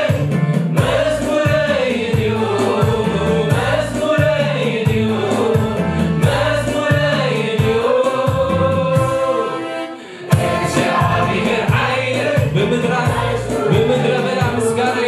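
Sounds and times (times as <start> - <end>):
instrumental accompaniment with bass: 0.0 - 15.0
man singing lead: 0.0 - 15.0
choir singing: 0.8 - 15.0.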